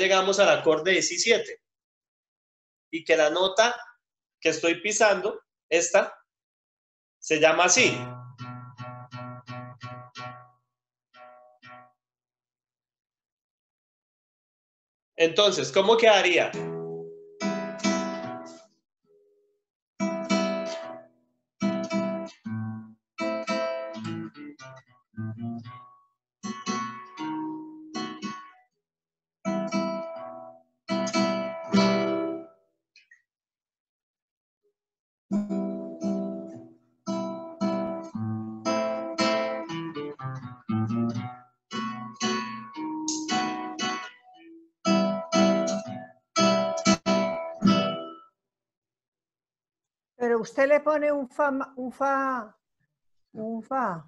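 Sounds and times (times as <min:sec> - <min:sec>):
classical guitar playing: 0:07.8 - 0:10.6, 0:11.2 - 0:11.9, 0:16.5 - 0:18.6, 0:20.0 - 0:28.6, 0:29.5 - 0:32.5, 0:35.3 - 0:48.2.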